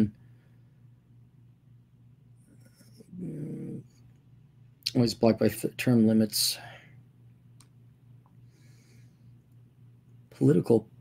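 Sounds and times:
man humming hmm: 2.6s - 4.0s.

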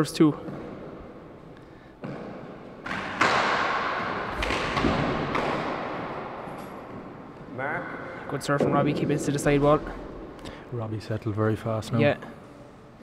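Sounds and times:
handball thudding in echoing court: 0.4s - 8.8s.

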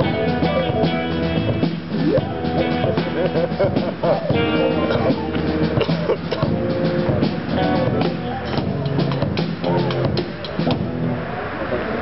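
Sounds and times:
drum hits: 0.0s - 11.1s
electric guitar and bass ringing: 0.0s - 11.8s.

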